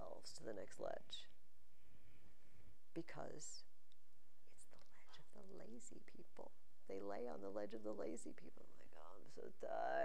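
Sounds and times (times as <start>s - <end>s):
woman speaking softly: 0.0s - 1.3s, 3.0s - 3.7s, 4.5s - 10.0s.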